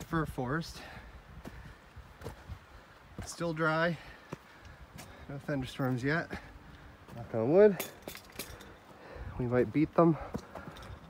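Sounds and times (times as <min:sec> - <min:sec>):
faint footsteps on rocky trail: 0:00.0 - 0:11.0.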